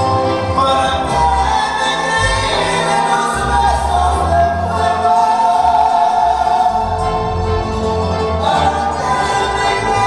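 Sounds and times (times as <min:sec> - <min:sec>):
bass guitar: 0:00.0 - 0:10.0
voices holding long notes: 0:00.1 - 0:10.0.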